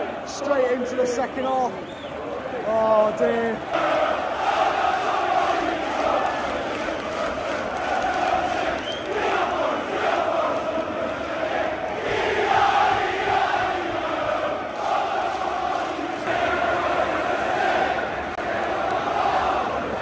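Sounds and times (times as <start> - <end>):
crowd chanting and singing: 0.0 - 20.0.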